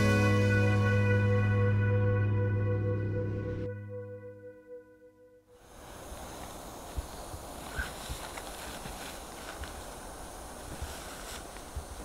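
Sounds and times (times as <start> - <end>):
music track: 0.0 - 5.5
outdoor background noise: 5.4 - 12.0.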